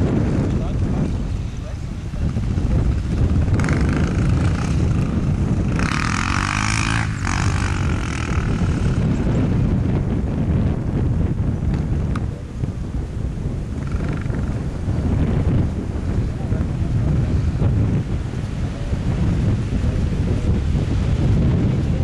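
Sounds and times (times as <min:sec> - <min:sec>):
wind rumble on microphone: 0:00.0 - 0:22.0
dirt bike engine revving: 0:01.2 - 0:10.0.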